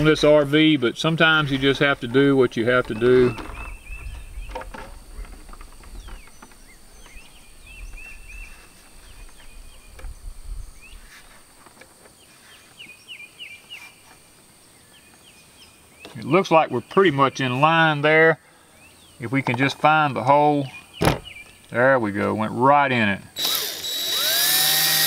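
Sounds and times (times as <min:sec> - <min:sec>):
small birds chirping: 0:00.0 - 0:11.4, 0:12.0 - 0:22.6.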